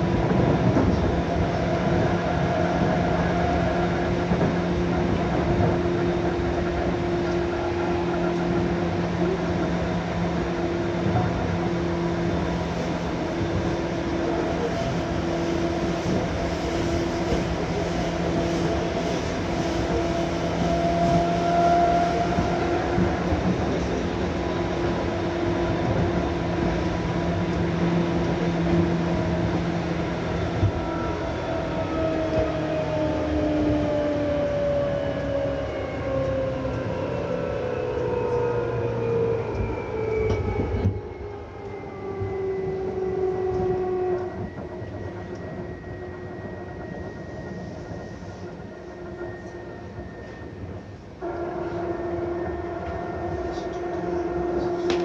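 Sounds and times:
rail noise rumbling: 0.0s - 55.0s
electric train motor whine: 5.4s - 55.0s.

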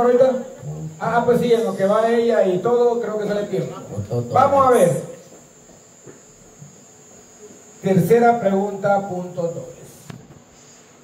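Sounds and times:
man speaking: 0.0s - 5.2s, 7.8s - 10.0s
crickets droning: 0.0s - 11.0s.

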